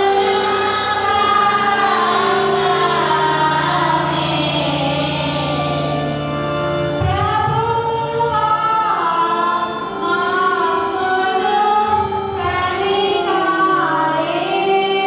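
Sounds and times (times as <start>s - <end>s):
women and girls singing a hymn: 0.0s - 15.0s.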